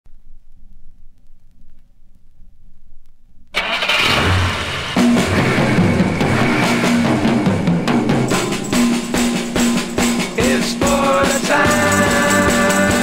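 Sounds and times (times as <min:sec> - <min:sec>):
record surface noise: 0:00.1 - 0:03.6
rock and roll drums and bass: 0:04.2 - 0:13.0.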